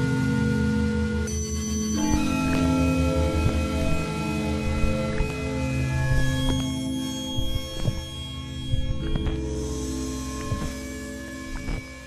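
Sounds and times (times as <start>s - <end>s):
sustained music tones: 0.0s - 12.0s.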